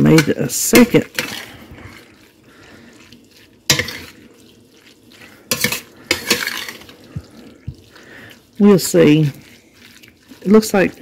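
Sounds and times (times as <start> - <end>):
spoon stirring wet noodles: 0.0 - 11.0.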